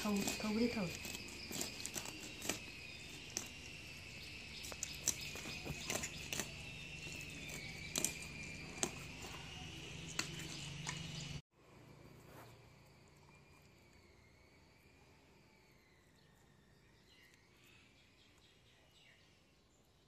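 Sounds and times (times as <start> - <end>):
high insect drone: 0.0 - 19.4.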